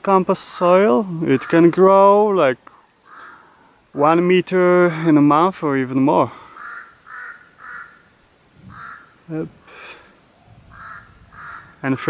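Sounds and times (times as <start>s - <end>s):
bird giving harsh caw-like calls: 3.0s - 3.9s, 6.2s - 11.8s.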